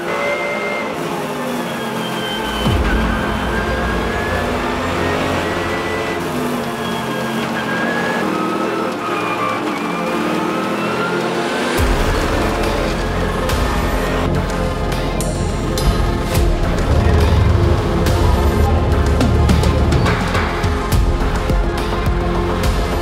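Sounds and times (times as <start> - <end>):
race car engine revving: 0.0 - 23.0
music with deep bass: 0.6 - 23.0.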